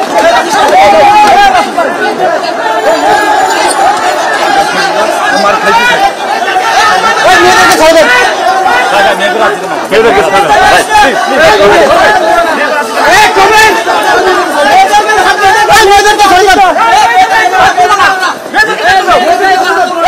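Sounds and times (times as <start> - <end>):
crowd shouting and yelling: 0.0 - 20.0.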